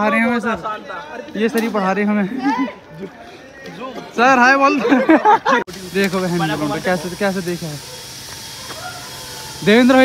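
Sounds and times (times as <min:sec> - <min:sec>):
men talking outdoors: 0:00.0 - 0:10.0.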